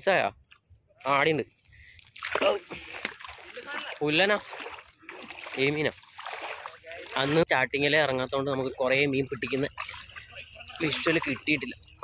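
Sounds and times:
water splashing and sloshing: 1.8 - 12.0.

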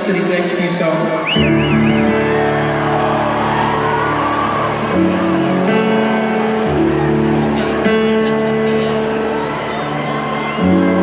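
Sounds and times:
faint crowd murmur: 0.0 - 11.0
piano chords: 0.0 - 11.0.

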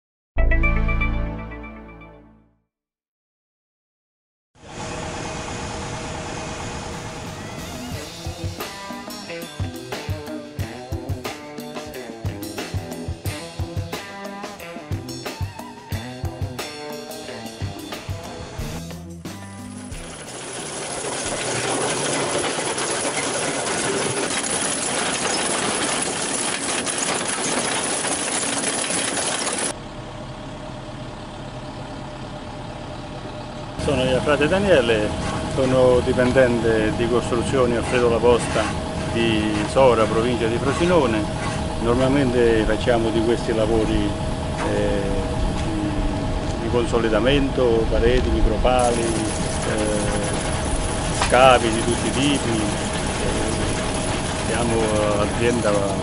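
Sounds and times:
excavator engine idling: 4.6 - 11.3, 11.9 - 56.0
hydraulic cutter machine rumbling: 18.9 - 56.0.

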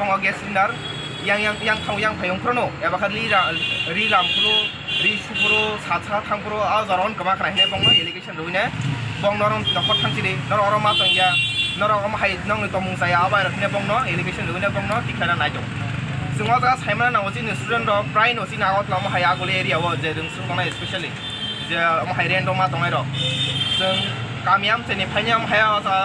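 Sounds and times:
man talking: 0.0 - 26.0
roadside traffic: 0.0 - 26.0
vehicle horn toots: 3.4 - 5.8, 7.6 - 8.2, 10.9 - 11.8, 23.1 - 24.2.

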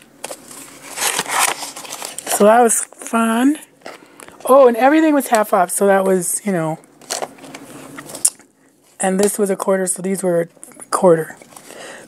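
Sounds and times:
books rustling: 0.0 - 2.8.

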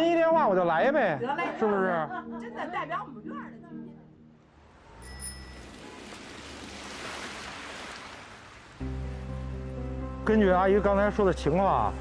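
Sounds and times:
soft background music: 0.0 - 5.4, 8.8 - 12.0
rain on wet pavement: 5.6 - 8.8.

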